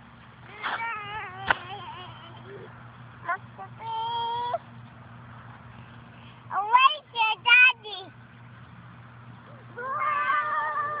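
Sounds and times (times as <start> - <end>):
child squealing: 9.8 - 11.0.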